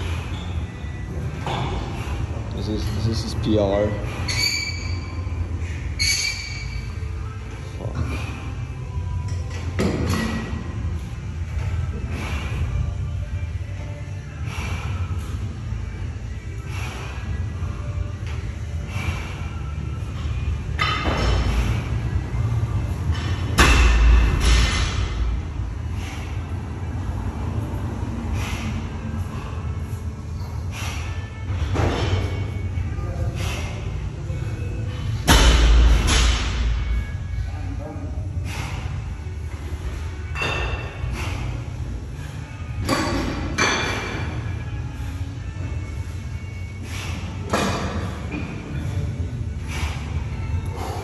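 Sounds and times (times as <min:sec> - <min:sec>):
background music: 0:07.4 - 0:34.1.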